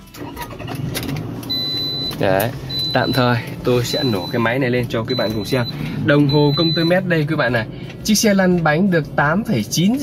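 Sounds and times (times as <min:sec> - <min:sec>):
car engine starting and running: 0:00.0 - 0:10.0
electronic warning chime: 0:01.5 - 0:07.4.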